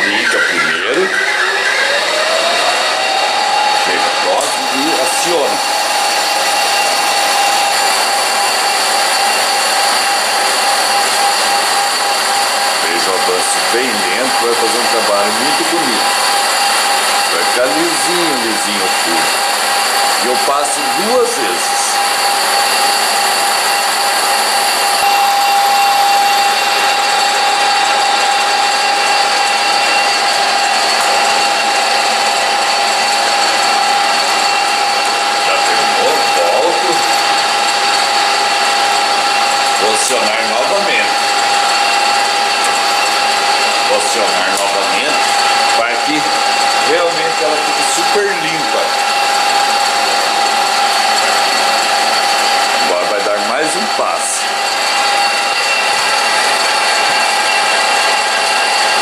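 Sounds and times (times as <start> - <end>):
boring bar cutting metal: 0.0 - 59.0
lathe running with high whine: 0.0 - 59.0.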